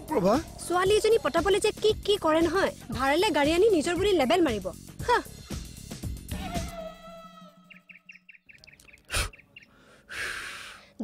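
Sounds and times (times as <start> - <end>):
small bird chirping: 7.7 - 9.8.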